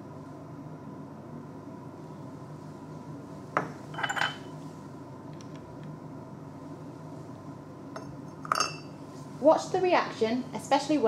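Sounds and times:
faint steady hum: 0.0s - 11.0s
glassy clinks: 4.0s - 4.5s, 8.0s - 9.0s.

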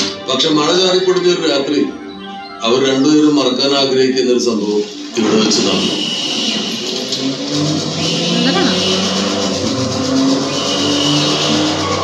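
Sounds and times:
cars speeding with engines roaring: 5.8s - 12.0s.

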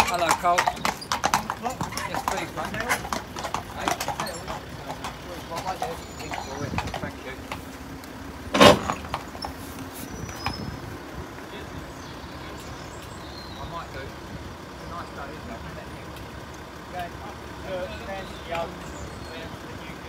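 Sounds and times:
distant voices: 0.0s - 20.0s
street noise: 0.0s - 20.0s.

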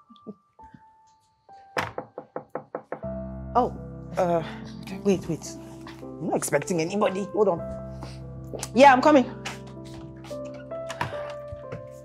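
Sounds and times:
faint background music: 0.0s - 12.0s
knocking on a door: 1.8s - 3.2s.

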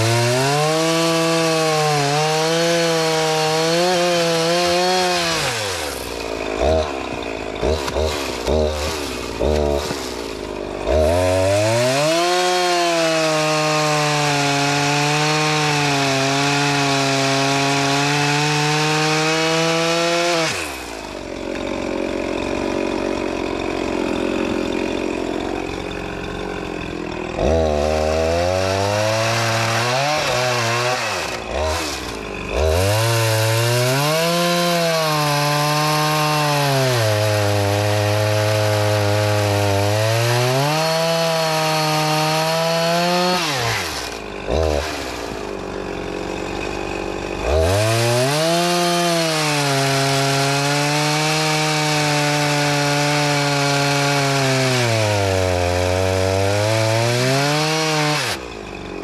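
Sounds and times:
chainsaw cutting logs: 0.0s - 59.0s
chainsaw idling: 0.0s - 59.0s.

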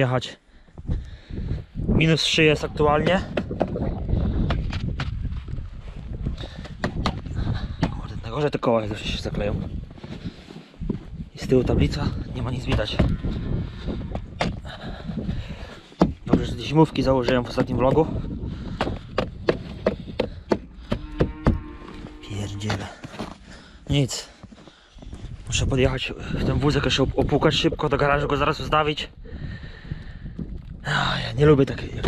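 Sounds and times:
low wind rumble on microphone: 0.6s - 32.0s
footsteps crunching in snow: 9.6s - 11.2s, 21.8s - 25.6s.

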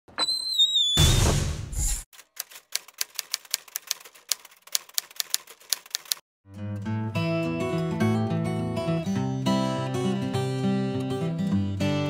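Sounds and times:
typewriter key clacks: 2.2s - 6.2s.

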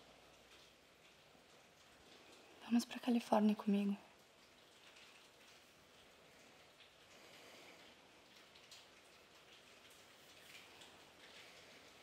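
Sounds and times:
faint hiss: 5.6s - 12.0s.

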